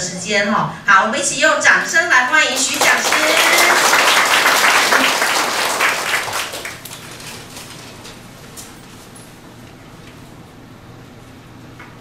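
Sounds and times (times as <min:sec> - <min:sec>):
audience applause: 0:02.5 - 0:07.2.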